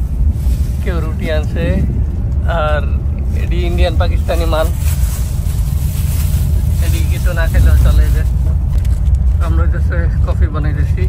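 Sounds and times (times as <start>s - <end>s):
bus rumbling on highway: 0.0s - 11.0s.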